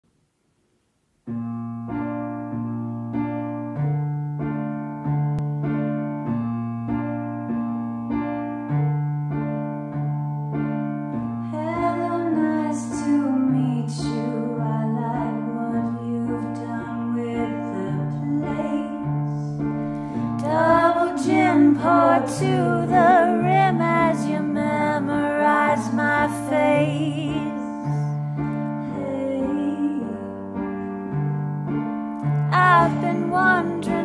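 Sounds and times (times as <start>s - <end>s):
piano repeated chords: 0.2s - 34.0s
woman singing: 11.4s - 19.6s, 20.2s - 28.2s, 28.8s - 30.8s, 32.5s - 34.0s.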